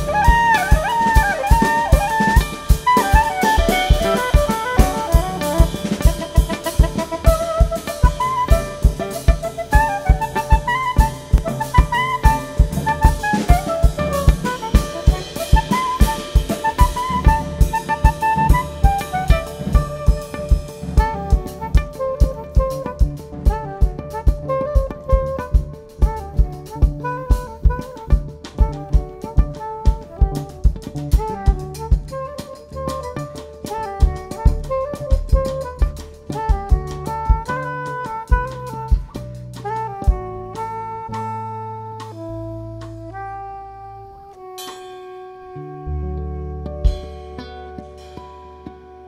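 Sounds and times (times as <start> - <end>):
drum kit steady beat: 0.0 - 43.2, 46.8 - 49.0
saxophone melody: 0.0 - 49.0
cymbal wash: 44.6 - 45.5.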